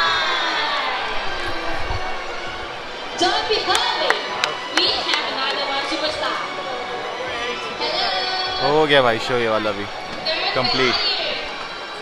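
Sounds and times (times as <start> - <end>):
crowd voices and cheering: 0.0 - 12.0
show music: 0.1 - 12.0
sharp claps: 3.6 - 5.9.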